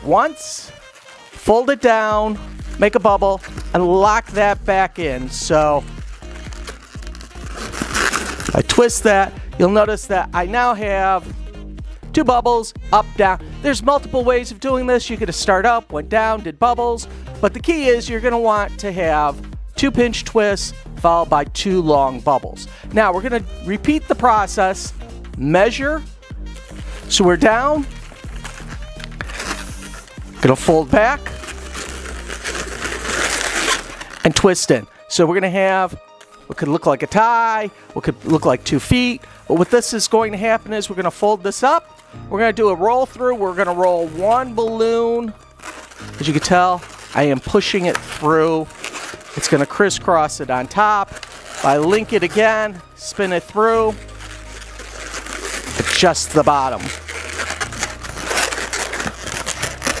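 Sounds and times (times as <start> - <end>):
balloon rubber rubbing and crinkling: 0.0 - 9.2, 26.5 - 34.6, 43.0 - 60.0
background music: 0.0 - 60.0.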